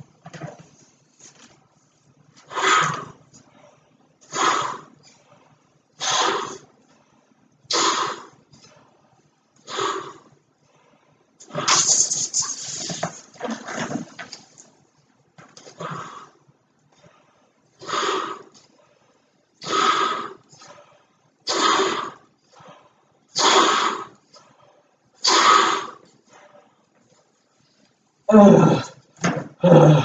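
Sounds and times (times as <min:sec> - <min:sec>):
breaths puffed into balloon: 0:11.4 - 0:14.4.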